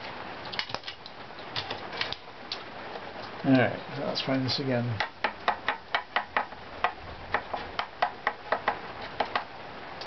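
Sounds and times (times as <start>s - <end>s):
stick tapping wooden plate: 5.0s - 9.5s.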